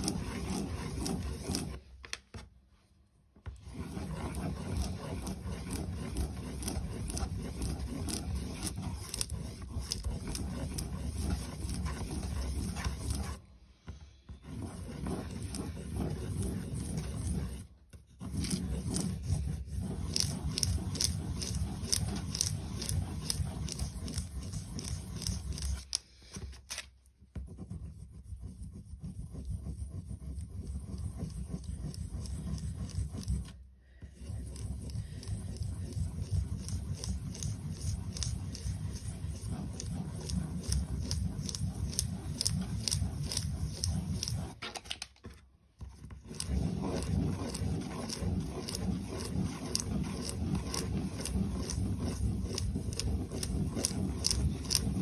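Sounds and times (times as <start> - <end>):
crayon scribbling on paper: 0.0 - 1.8, 3.6 - 13.4, 14.3 - 26.0, 27.4 - 44.6, 45.9 - 55.0.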